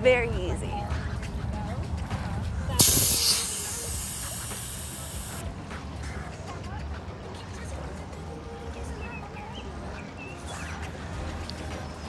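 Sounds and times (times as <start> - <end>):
compressed air hissing out: 2.8 - 5.4
valve click: 2.8 - 5.4.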